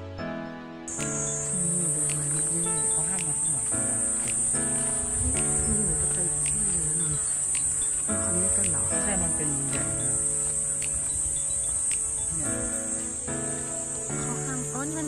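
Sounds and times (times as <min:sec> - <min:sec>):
background music with gliding melody: 0:00.0 - 0:15.0
cicadas droning: 0:00.9 - 0:15.0.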